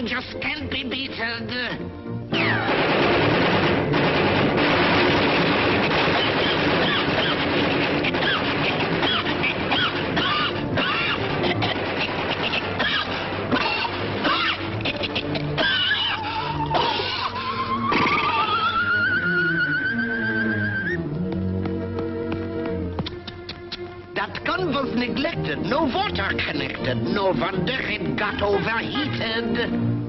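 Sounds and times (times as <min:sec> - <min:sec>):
busy orchestral score: 0:00.0 - 0:30.0
machine-gun fire rattling: 0:02.6 - 0:10.5.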